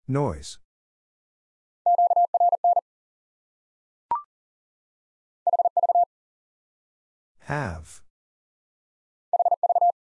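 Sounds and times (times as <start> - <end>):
morse code tone: 9.4 - 10.0.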